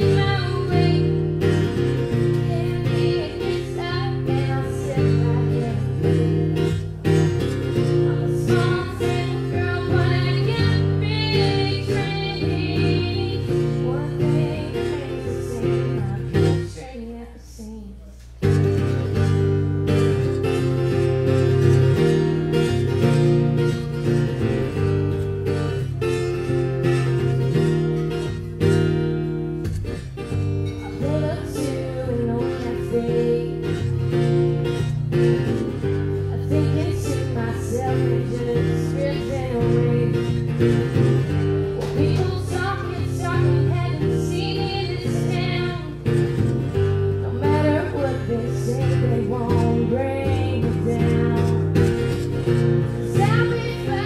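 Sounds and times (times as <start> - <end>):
acoustic guitar strumming: 0.0 - 17.3, 18.4 - 54.0
woman singing: 0.0 - 18.9, 30.6 - 34.9, 35.9 - 54.0.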